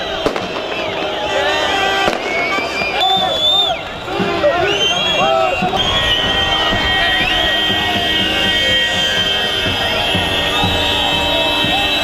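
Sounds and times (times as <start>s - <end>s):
crowd shouting: 0.0s - 12.0s
fireworks bangs: 0.0s - 12.0s.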